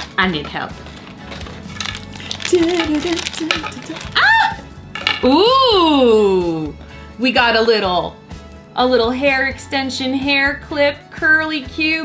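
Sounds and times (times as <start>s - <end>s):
foil packet crinkling: 0.8s - 4.2s.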